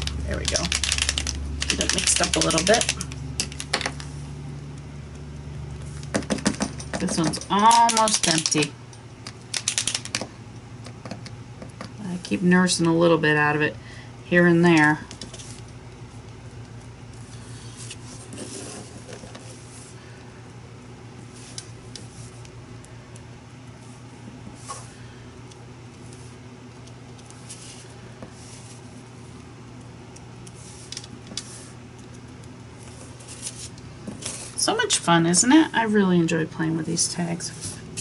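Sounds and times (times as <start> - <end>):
steady low hum: 0.0 - 38.0.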